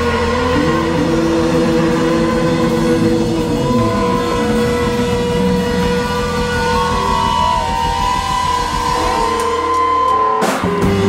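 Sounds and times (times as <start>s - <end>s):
bass: 0.0s - 11.0s
distorted electric guitars droning: 0.0s - 11.0s
drums: 0.0s - 11.0s.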